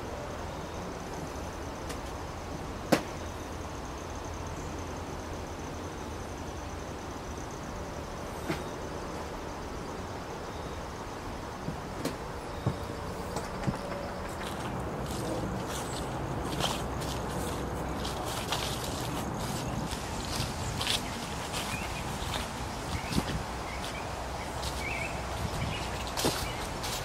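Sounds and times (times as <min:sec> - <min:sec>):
outdoor background hiss: 0:00.0 - 0:27.0.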